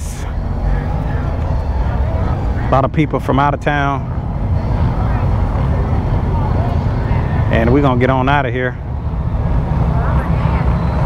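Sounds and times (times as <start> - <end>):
motorcycle engine low rumble: 0.0 - 11.0.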